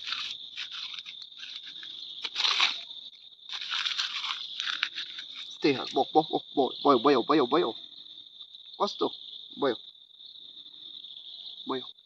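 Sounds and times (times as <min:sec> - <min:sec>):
dry leaves crunching in hands: 0:00.0 - 0:06.0.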